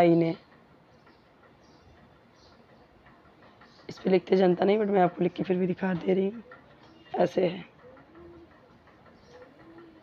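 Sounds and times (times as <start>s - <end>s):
dove cooing: 7.8s - 10.0s.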